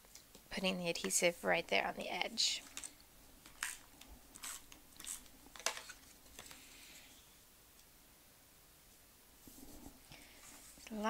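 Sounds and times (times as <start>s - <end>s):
paper crinkling and rustling: 2.6s - 6.7s.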